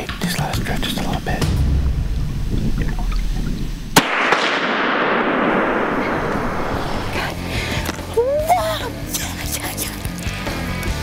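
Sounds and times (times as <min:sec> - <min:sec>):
gunshot with rolling echo: 0:01.4 - 0:07.5.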